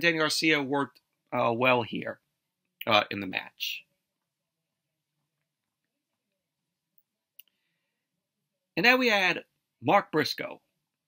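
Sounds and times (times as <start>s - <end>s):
faint click: 7.0s - 7.6s.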